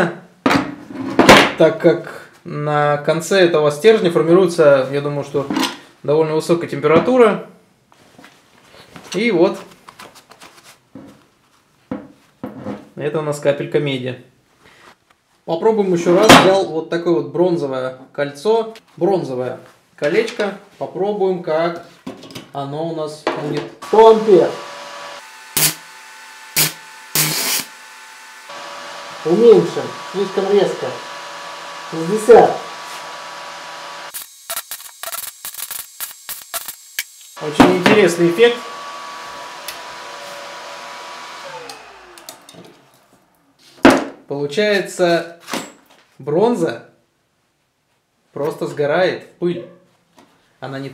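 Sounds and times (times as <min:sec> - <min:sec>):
carbon arc crackling: 0:23.8 - 0:38.6
steady whir: 0:23.8 - 0:43.4.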